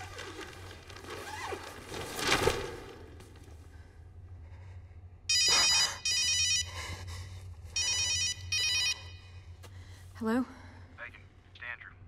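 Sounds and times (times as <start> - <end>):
steady low hum: 2.7 - 12.0
phone ringing electronic ringtone: 5.3 - 6.7, 7.8 - 9.2.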